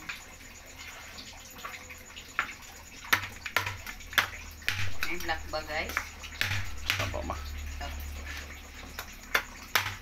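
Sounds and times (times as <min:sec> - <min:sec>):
spatula stirring watery stew: 0:00.0 - 0:10.0
spatula knocking against pan: 0:03.1 - 0:07.2, 0:09.3 - 0:10.0.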